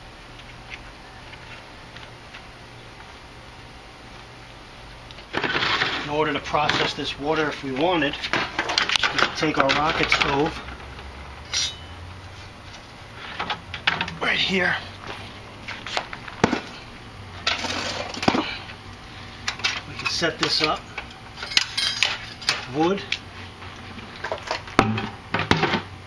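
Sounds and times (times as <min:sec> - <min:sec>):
low steady hum: 0:00.0 - 0:26.0
sharp metal clank with ring: 0:11.4 - 0:12.0.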